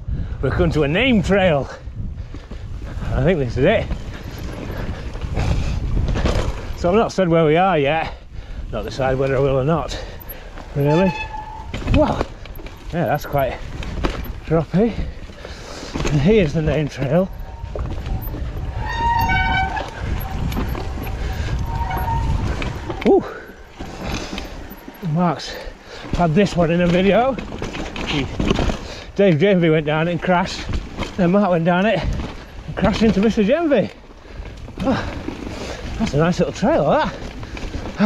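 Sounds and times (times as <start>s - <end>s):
wind on microphone: 0.0s - 6.9s, 16.1s - 24.7s
tyre and wind noise: 0.0s - 38.0s
brake squeal: 8.9s - 13.6s, 16.1s - 26.7s
man speaking: 10.8s - 11.2s, 12.9s - 13.6s, 14.5s - 15.1s, 16.1s - 17.4s, 25.0s - 27.4s.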